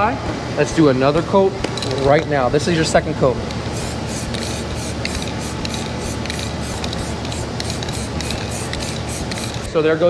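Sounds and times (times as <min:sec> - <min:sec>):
aerosol spray pulsing hiss: 0:03.7 - 0:09.7.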